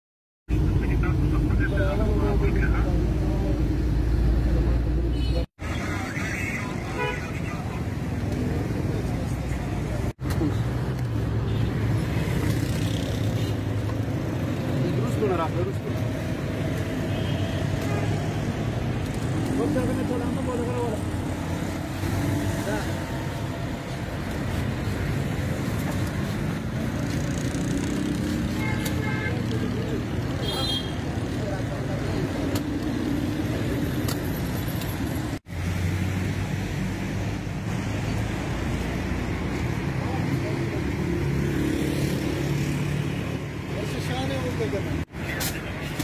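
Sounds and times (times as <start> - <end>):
vehicles passing: 0.5 - 46.0
voices: 0.6 - 10.8.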